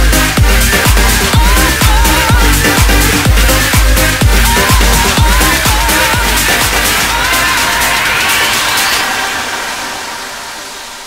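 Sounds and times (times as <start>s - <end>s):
hissing noise sweep: 0.0s - 11.0s.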